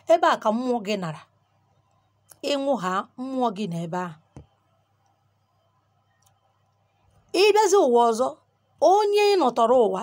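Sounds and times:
woman speaking: 0:00.0 - 0:01.4, 0:02.3 - 0:04.4, 0:07.3 - 0:10.0
faint low hum: 0:00.0 - 0:10.0.

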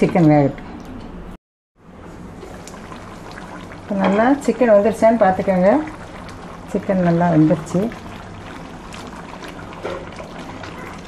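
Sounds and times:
gravy bubbling and popping: 0:02.1 - 0:11.0
spatula stirring in pan: 0:02.3 - 0:11.0.

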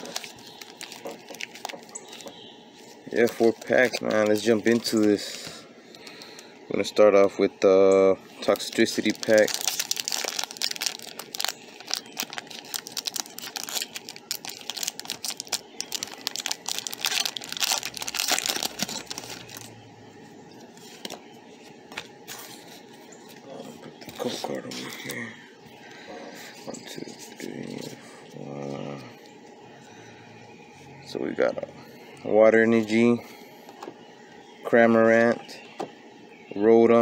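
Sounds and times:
foil wrapper crinkling and tearing: 0:00.0 - 0:02.4, 0:03.0 - 0:05.4, 0:08.4 - 0:19.7
trading cards being handled: 0:00.0 - 0:06.5, 0:08.4 - 0:19.8, 0:20.5 - 0:25.2.

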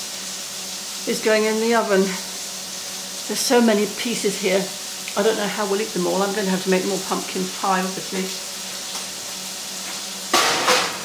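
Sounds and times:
onions sizzling in a pan: 0:00.0 - 0:11.0
metal baking tray clatter: 0:10.3 - 0:11.0.

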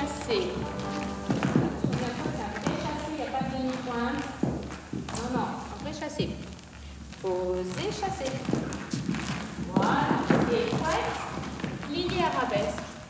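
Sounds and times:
light dance steps on floor: 0:00.0 - 0:13.0.

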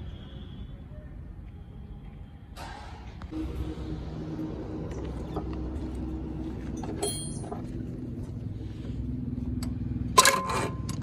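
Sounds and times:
steady low hum: 0:03.2 - 0:10.2.

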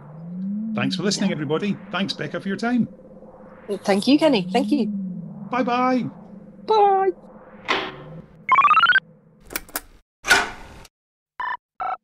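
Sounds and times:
short electronic beeps: 0:08.5 - 0:09.0.

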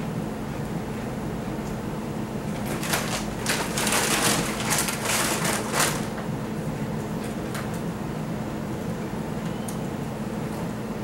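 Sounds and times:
plastic bag crinkling: 0:02.6 - 0:06.2.

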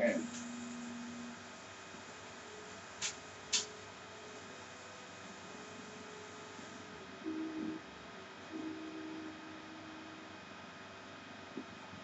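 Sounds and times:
film soundtrack hiss: 0:00.0 - 0:12.0
faint held tone: 0:07.2 - 0:07.8, 0:08.5 - 0:10.3.

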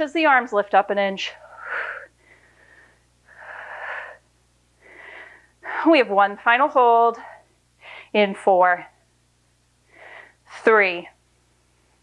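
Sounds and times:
woman breathing hard: 0:01.4 - 0:05.9, 0:07.8 - 0:08.1, 0:09.9 - 0:10.4.

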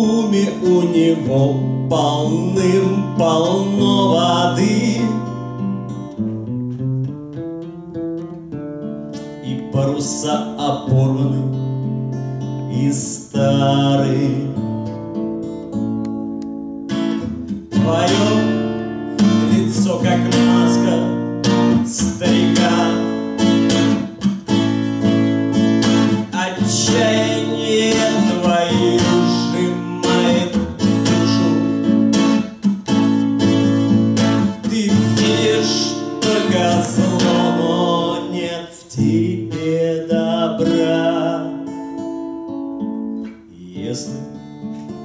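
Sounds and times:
man singing: 0:00.0 - 0:05.5, 0:09.3 - 0:14.8, 0:17.7 - 0:24.2, 0:25.0 - 0:32.5, 0:33.4 - 0:42.1, 0:43.3 - 0:44.6
acoustic guitar strumming chords: 0:00.0 - 0:45.0.

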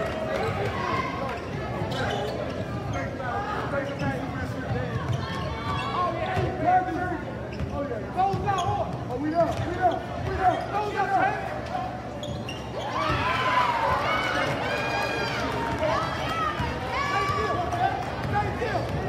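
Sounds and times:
sneakers squeaking: 0:00.4 - 0:14.6.

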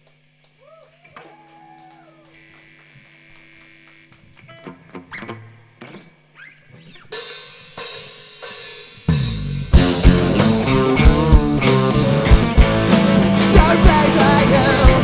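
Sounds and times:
amplifier hum: 0:00.0 - 0:07.1, 0:09.0 - 0:15.0
quiet electric guitar and bass: 0:00.3 - 0:07.2, 0:09.1 - 0:15.0
rock band playing: 0:07.1 - 0:15.0.

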